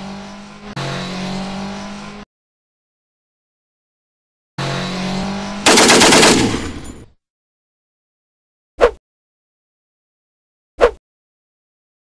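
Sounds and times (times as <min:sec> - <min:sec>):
machine-gun fire: 0:05.7 - 0:07.0.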